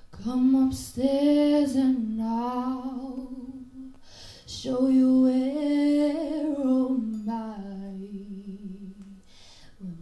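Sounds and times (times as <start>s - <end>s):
woman singing in husky voice: 0.0s - 10.0s
singer breathing: 4.0s - 4.5s, 9.2s - 9.8s.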